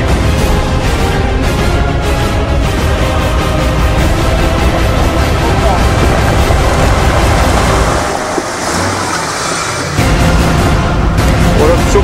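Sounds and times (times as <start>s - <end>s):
off-road vehicle engine climbing: 2.7s - 11.9s
loud rushing noise: 3.9s - 11.1s.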